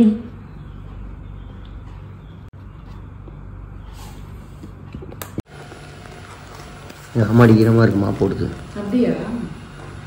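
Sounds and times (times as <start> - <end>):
robot vacuum motor hum: 5.5 - 10.0.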